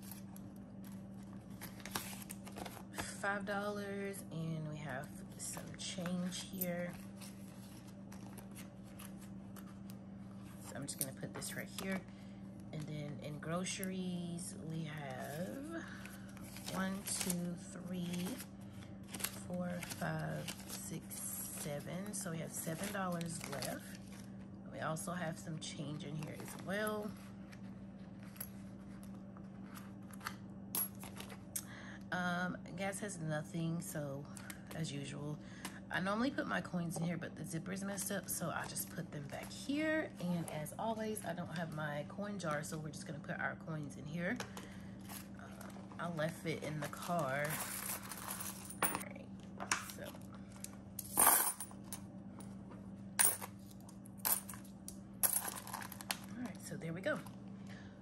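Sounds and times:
coins clinking on a tabletop: 47.5 - 49.0, 51.0 - 51.7, 53.2 - 53.5, 54.2 - 54.6, 55.2 - 56.1.

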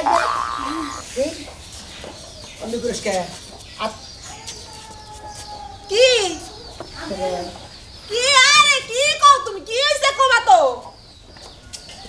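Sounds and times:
chicken clucking: 0.0 - 7.7.

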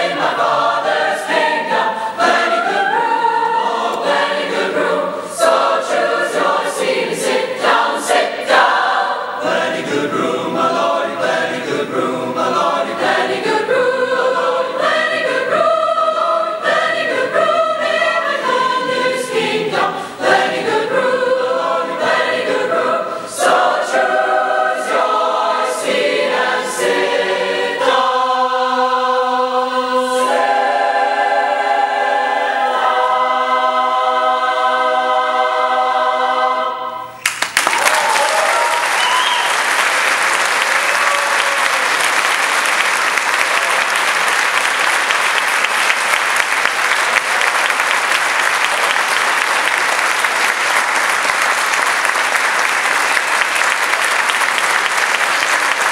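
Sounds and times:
choir singing: 0.0 - 37.2
audience applause: 37.2 - 55.9.

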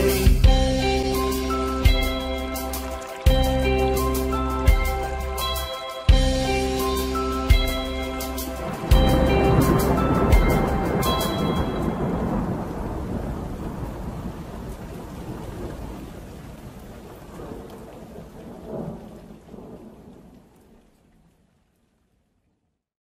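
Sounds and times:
heavy rain: 0.0 - 22.1
children's tune: 3.6 - 12.0
thunder clap: 7.5 - 20.6.

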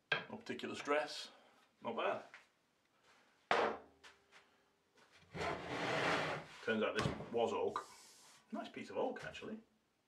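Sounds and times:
wood scraping across plywood: 5.3 - 6.7.

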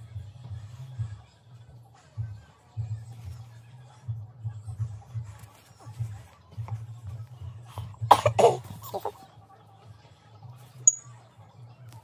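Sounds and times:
person coughing: 8.1 - 9.1.

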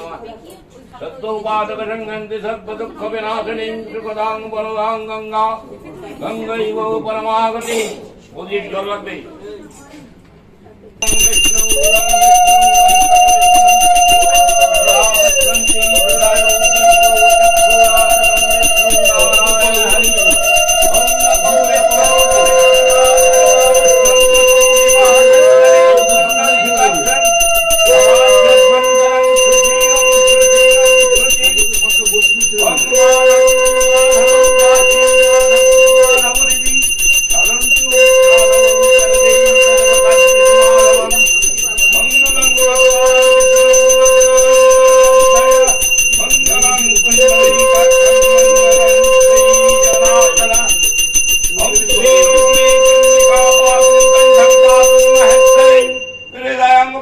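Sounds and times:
loud long held note: 11.0 - 31.5
hand bell ringing rapidly: 11.0 - 56.6
loud steady held tone: 11.0 - 57.0.

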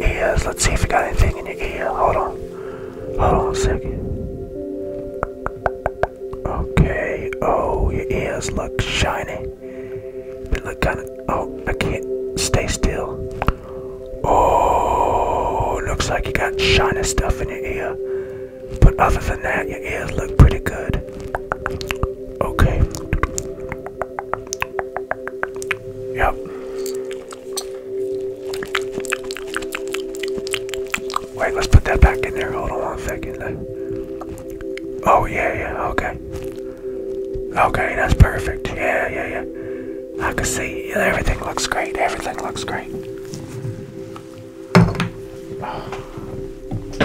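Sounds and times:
soft background music: 0.0 - 47.0
props thunking and knocking: 44.8 - 45.2.

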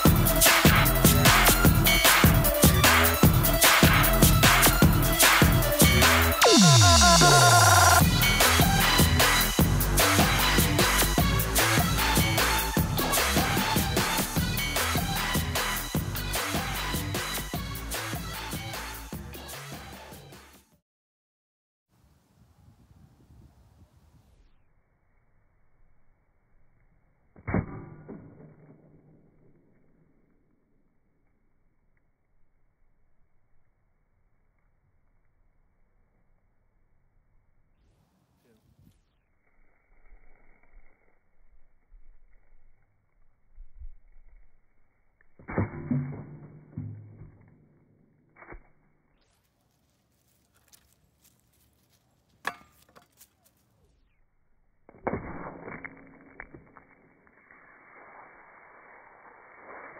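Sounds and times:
metal blade hitting pineapple: 52.4 - 53.0.

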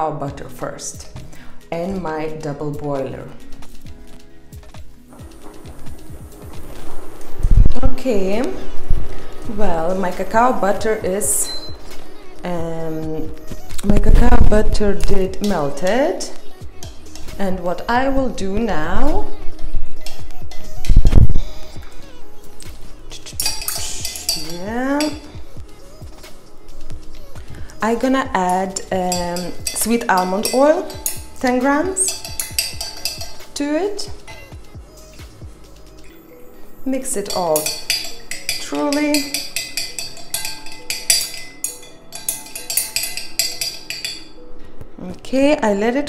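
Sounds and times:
background music: 0.0 - 46.0
spoon clinking against glass jug: 23.3 - 25.3, 28.4 - 33.6, 37.1 - 44.4.

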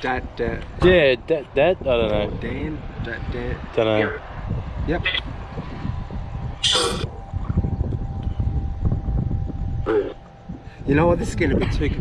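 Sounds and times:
radio scanning crackling hiss: 4.0 - 5.3
burst of radio sound: 6.6 - 7.2.

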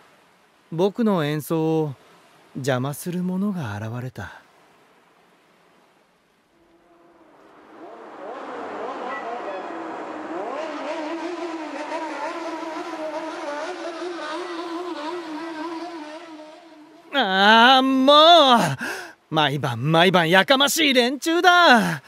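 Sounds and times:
motorcycle engines revving: 6.8 - 17.2.

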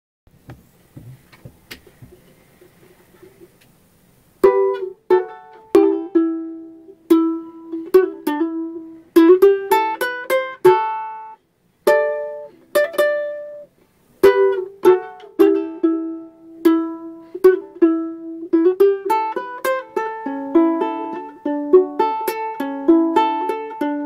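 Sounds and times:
faint clicks and knocks: 0.4 - 3.8
ukulele plucked melody: 4.4 - 24.0.

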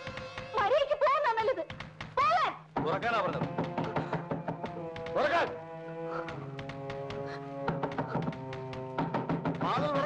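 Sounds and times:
film music with steady chords: 1.7 - 10.0.

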